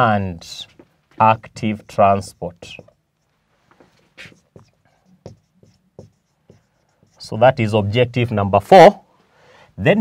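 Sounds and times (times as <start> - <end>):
whiteboard marker squeaking: 0.7 - 7.4.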